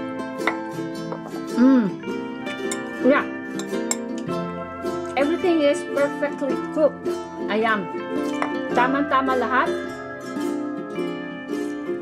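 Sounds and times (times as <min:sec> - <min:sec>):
plucked strings music: 0:00.0 - 0:12.0
fork clinking against ceramic bowl: 0:02.7 - 0:03.0.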